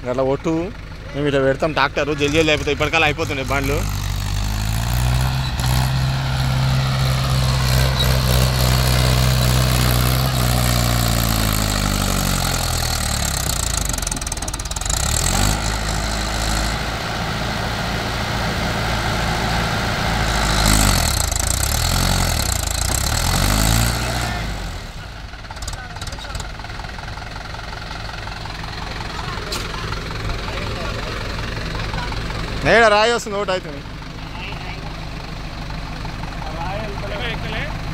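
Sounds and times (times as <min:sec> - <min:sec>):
tractor diesel engine under load: 0:00.0 - 0:37.9.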